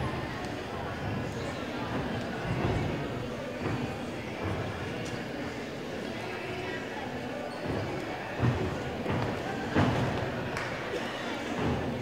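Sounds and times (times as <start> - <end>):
distant voices in a hall: 0.0 - 12.0.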